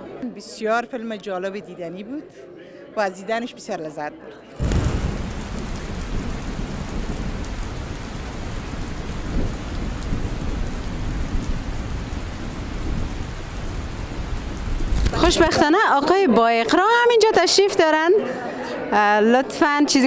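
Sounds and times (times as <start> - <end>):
low rumble: 4.6 - 7.7
heavy rain: 4.6 - 15.7.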